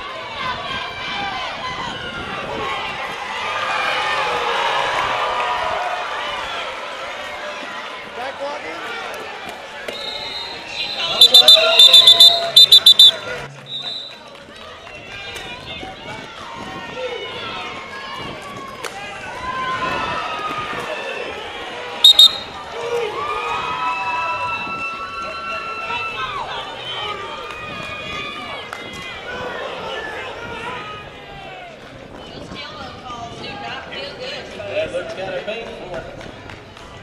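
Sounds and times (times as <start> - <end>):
crowd chatter: 6.0 - 37.0
referee whistle blasts: 10.0 - 14.1, 22.0 - 22.6.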